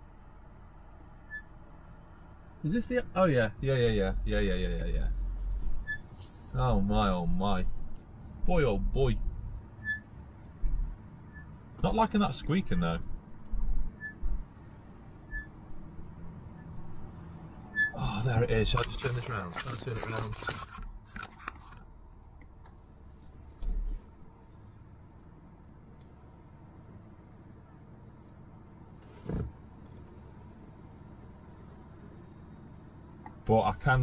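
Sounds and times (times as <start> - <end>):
vehicle rumble from inside cab: 0.0 - 34.0
high-pitched vehicle squeak: 1.2 - 1.6, 5.8 - 6.4, 9.8 - 10.2, 11.3 - 11.6, 13.9 - 14.4, 15.2 - 15.7, 17.6 - 18.0, 18.8 - 21.8.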